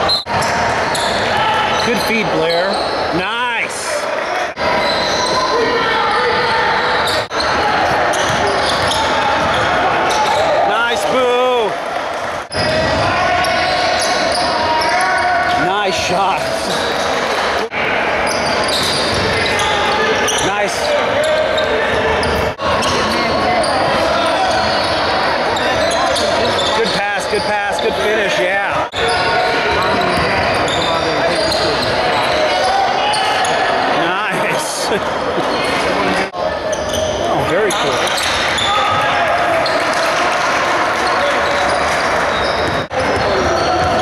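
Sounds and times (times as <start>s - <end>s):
basketball play on court: 0.0s - 44.0s
crowd voices: 0.0s - 44.0s.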